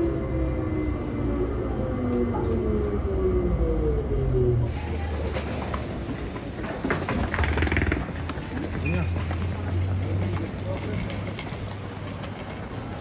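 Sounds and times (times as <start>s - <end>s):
electric train motor whine: 0.0s - 4.7s
wheeled suitcases rolling: 4.7s - 13.0s.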